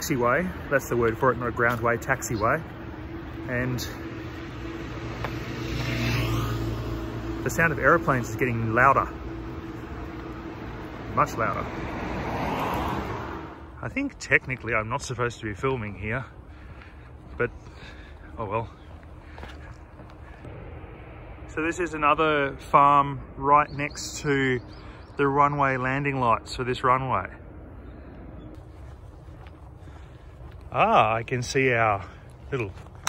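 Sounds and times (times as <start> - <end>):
jet engines droning: 0.0 - 13.9, 20.0 - 29.0
footsteps on pavement: 0.0 - 20.5, 27.5 - 33.0.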